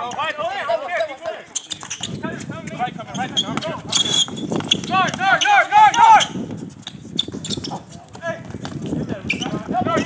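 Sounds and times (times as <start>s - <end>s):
players scuffing and knocking: 1.1s - 10.0s
sneakers squeaking on court: 1.2s - 10.0s.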